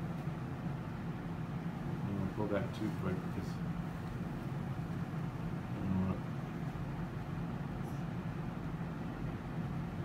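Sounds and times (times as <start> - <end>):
room equipment hum: 0.0 - 10.0.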